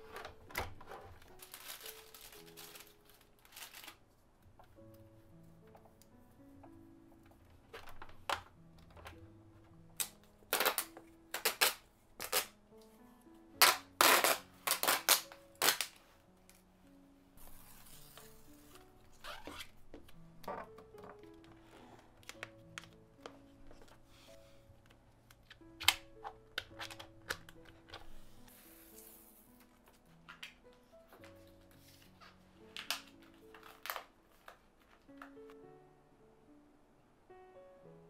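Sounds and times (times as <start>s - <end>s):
soft background music: 0.0s - 38.0s
plastic clicks and crackles: 7.3s - 12.6s, 22.2s - 24.0s, 24.8s - 28.1s, 32.7s - 35.6s.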